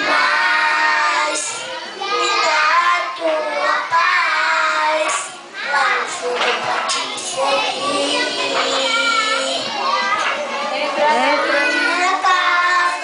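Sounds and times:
boy singing into microphone: 0.0s - 9.8s, 11.0s - 13.0s.

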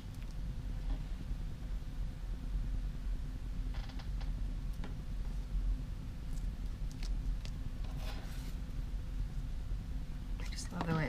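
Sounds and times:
low room hum: 0.0s - 11.0s
woman speaking: 10.4s - 11.0s.

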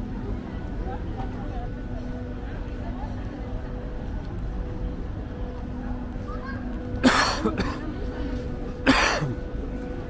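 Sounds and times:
person coughing: 7.0s - 7.9s, 8.8s - 9.4s.

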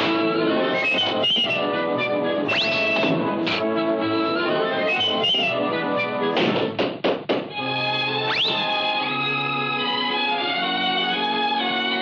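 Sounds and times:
cartoon orchestral music: 0.0s - 6.4s, 7.5s - 12.0s
quick thumps: 6.4s - 7.6s.

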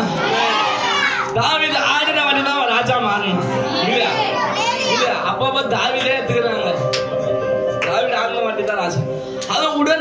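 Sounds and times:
congregation voices: 0.0s - 10.0s.

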